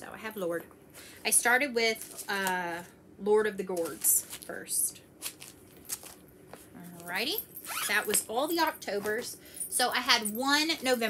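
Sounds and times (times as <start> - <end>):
soft rustles of bag: 1.9 - 2.5.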